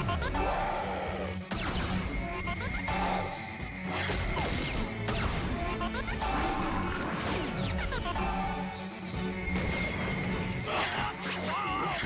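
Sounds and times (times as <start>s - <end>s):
action music score: 0.0s - 12.0s.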